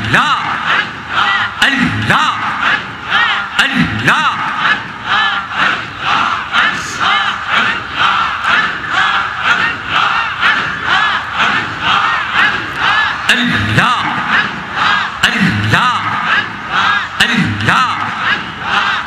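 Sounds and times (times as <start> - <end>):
crowd of men chanting: 0.0 - 19.0.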